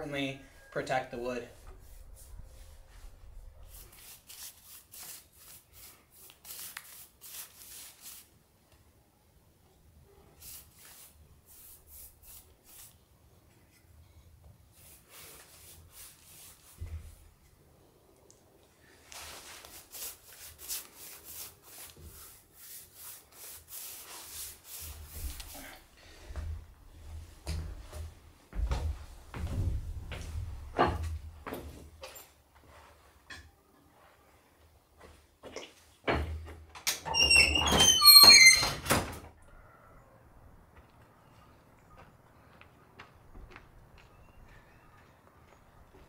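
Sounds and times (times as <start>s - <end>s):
paintbrush strokes on wood: 0.8s - 8.3s, 10.0s - 17.4s, 18.8s - 26.4s
door hinges squeaking: 36.2s - 39.2s.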